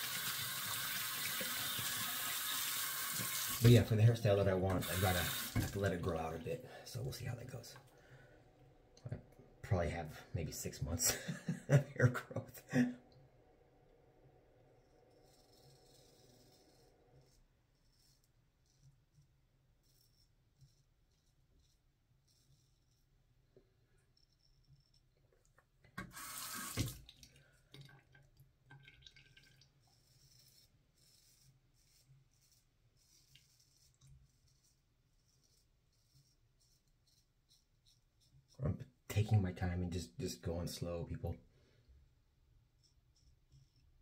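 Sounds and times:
tap water running: 0.0 - 3.9, 4.6 - 6.2, 26.0 - 29.7.

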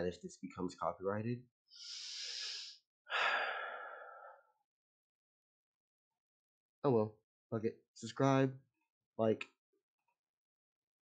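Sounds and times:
man sighing: 1.9 - 4.4.

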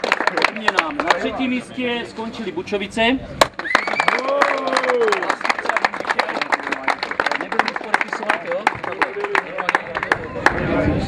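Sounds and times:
people clapping: 0.0 - 1.4, 3.4 - 11.0.

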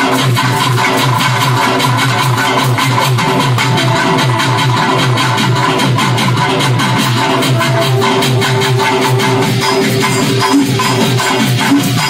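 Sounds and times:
electronic keyboard: 2.6 - 12.0.

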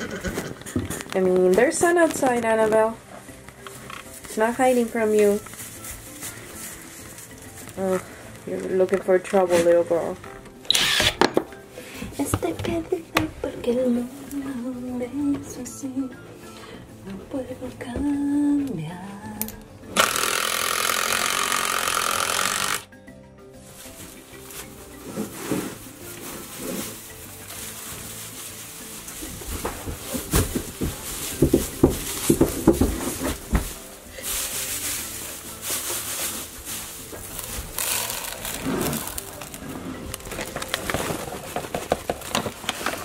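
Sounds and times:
rustling: 0.0 - 10.4, 23.6 - 43.0
background music: 0.0 - 43.0
cordless drill driving screw into wood: 10.7 - 11.3, 20.0 - 22.9.

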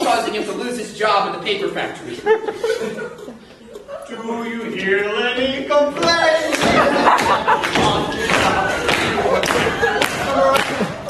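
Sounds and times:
audience laughing: 2.0 - 4.6, 6.2 - 11.0.

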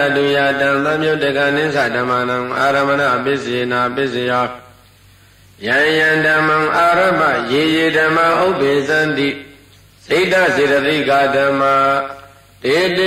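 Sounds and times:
man chanting melodically: 0.0 - 4.8, 5.6 - 13.0.

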